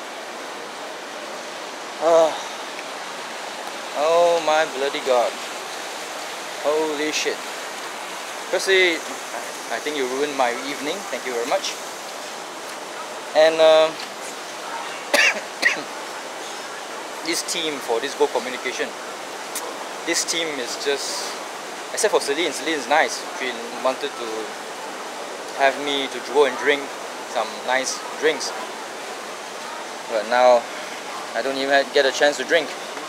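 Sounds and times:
light rain hissing: 0.0s - 33.0s
man coughing: 15.1s - 15.9s.

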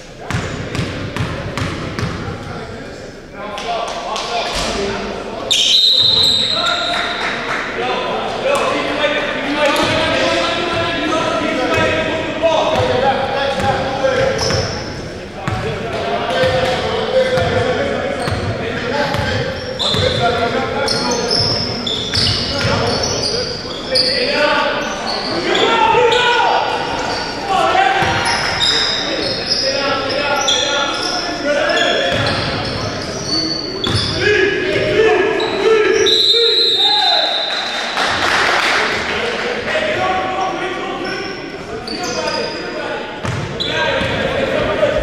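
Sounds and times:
players' voices: 0.0s - 45.0s
shoe squeaks: 5.5s - 7.2s, 14.2s - 15.0s, 19.1s - 27.4s, 28.2s - 34.2s, 41.0s - 44.2s.

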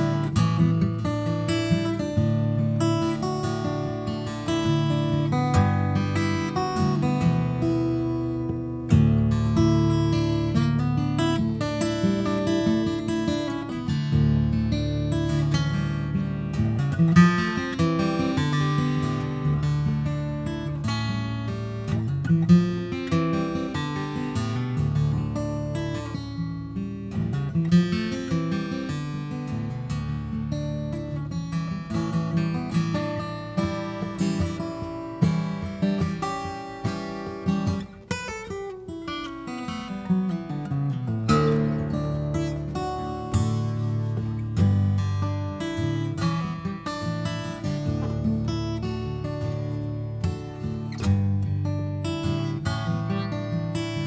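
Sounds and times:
solo acoustic guitar melody: 0.0s - 54.0s.

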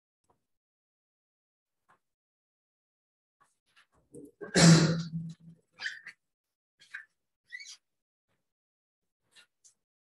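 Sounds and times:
man clearing his throat: 4.4s - 5.2s.

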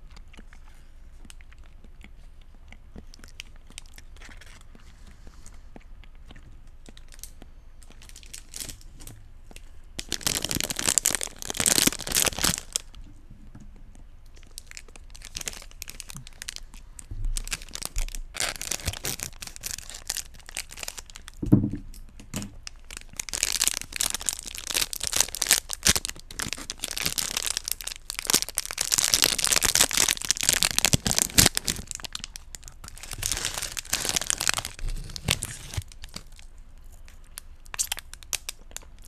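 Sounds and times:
mouth clicking sounds: 0.0s - 8.0s.

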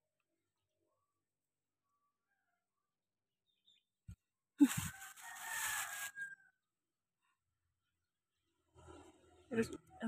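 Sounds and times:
rooster crowing: 4.6s - 6.7s.

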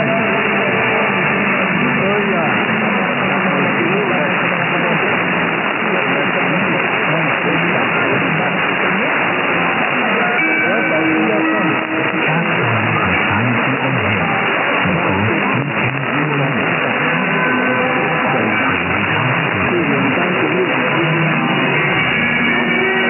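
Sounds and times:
faint radio speech: 0.0s - 22.1s
held musical notes: 0.0s - 23.0s
radio music: 0.0s - 23.0s
radio static hiss: 0.0s - 23.0s.

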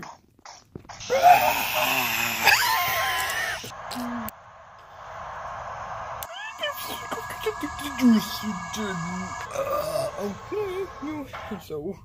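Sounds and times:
faint steady hum: 1.1s - 12.0s.

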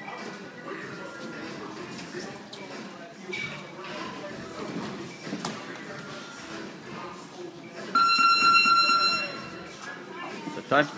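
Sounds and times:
round-timer buzzer: 8.0s - 9.6s.

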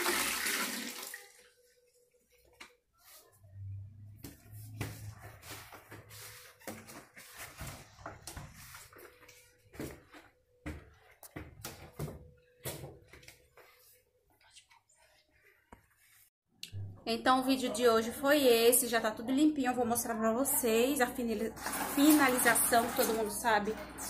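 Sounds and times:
flip-flop footsteps: 4.1s - 14.0s
squeegee scraping wet tile floor: 21.5s - 23.8s.

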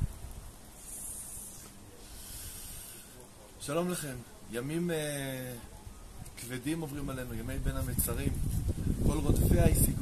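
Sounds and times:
high thin hiss: 0.7s - 3.2s.

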